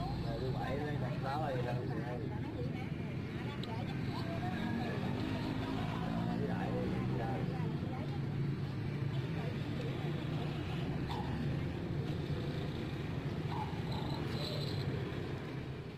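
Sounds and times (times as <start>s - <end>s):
motorbike and road traffic hum: 0.0s - 15.9s
people talking in background: 0.0s - 15.9s.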